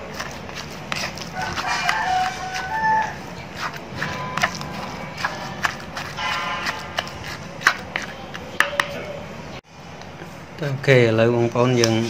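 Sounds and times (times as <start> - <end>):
pestle mashing in clay mortar: 0.0 - 9.0
rooster crowing: 1.3 - 3.3.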